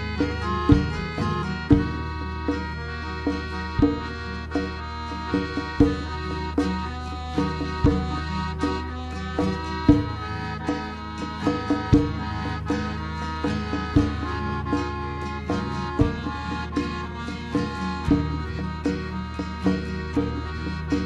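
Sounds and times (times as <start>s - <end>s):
folk dance music: 0.0s - 21.0s
heavy drum beat: 0.0s - 21.0s.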